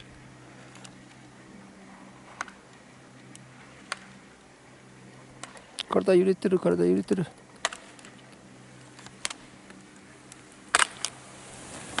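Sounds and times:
ski edges scraping snow: 0:10.8 - 0:12.0
skis hissing on snow: 0:11.1 - 0:12.0.

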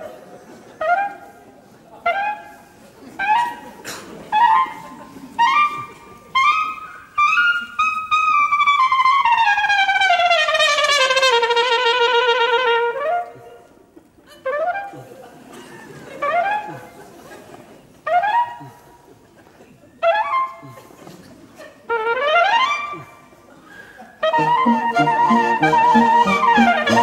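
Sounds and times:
brass instrument notes: 0:04.3 - 0:13.4, 0:16.2 - 0:16.8, 0:20.0 - 0:20.8, 0:21.9 - 0:23.3, 0:24.2 - 0:27.0.

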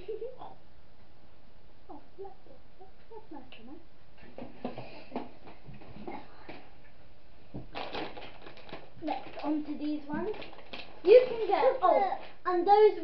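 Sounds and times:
soft voices: 0:01.9 - 0:03.8
packaging rustling and crinkling: 0:07.6 - 0:12.4.

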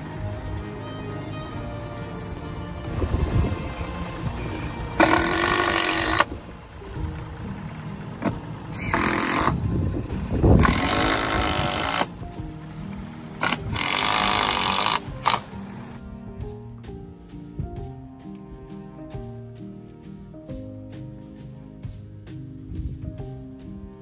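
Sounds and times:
background music: 0:00.0 - 0:24.0
impact driver rattling: 0:05.0 - 0:06.3, 0:08.8 - 0:09.6, 0:10.6 - 0:12.1, 0:13.4 - 0:15.5.

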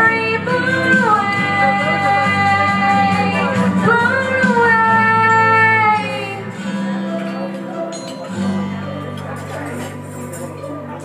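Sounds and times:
backing music with guitar strumming: 0:00.0 - 0:11.0.

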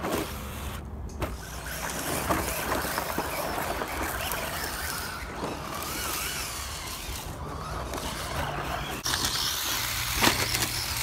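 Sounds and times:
tyres on sand and dirt: 0:00.0 - 0:11.0
electric motor whining: 0:01.4 - 0:11.0.

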